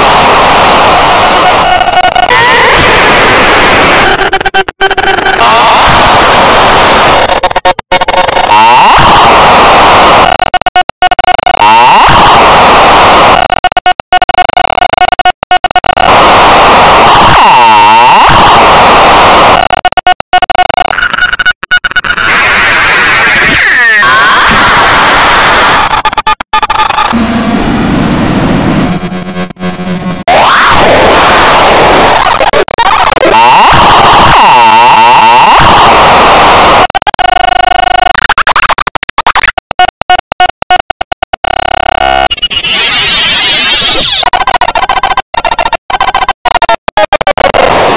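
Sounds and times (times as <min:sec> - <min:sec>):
distorted static-like cartoon audio: 0:00.0 - 0:47.9.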